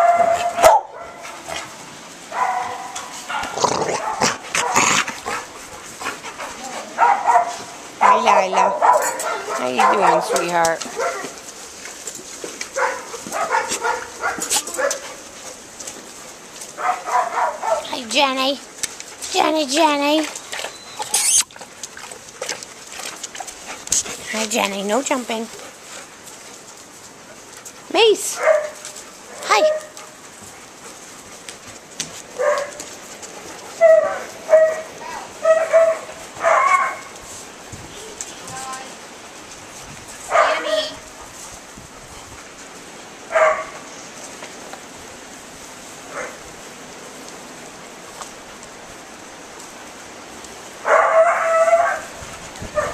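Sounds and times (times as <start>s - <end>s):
dog barking: 0.0s - 1.3s, 2.3s - 4.9s, 7.0s - 11.4s, 12.8s - 15.0s, 16.8s - 17.9s, 28.3s - 28.8s, 32.4s - 32.8s, 33.8s - 37.1s, 40.3s - 40.8s, 43.3s - 43.8s, 46.1s - 46.4s, 50.8s - 52.9s
dogs barking and yipping: 0.0s - 18.0s, 20.2s - 24.4s, 25.0s - 37.3s, 40.1s - 42.4s, 43.1s - 44.0s, 46.1s - 46.5s, 50.8s - 52.9s.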